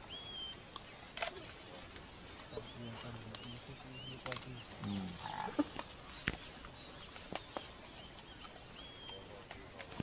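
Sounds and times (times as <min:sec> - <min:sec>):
bird chirp: 0:00.0 - 0:10.0
brush snapping: 0:00.7 - 0:10.0.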